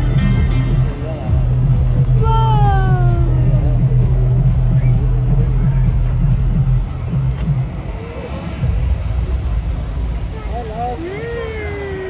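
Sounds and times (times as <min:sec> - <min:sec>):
faint voices: 0:00.0 - 0:12.0
steady low rumble: 0:00.0 - 0:12.0.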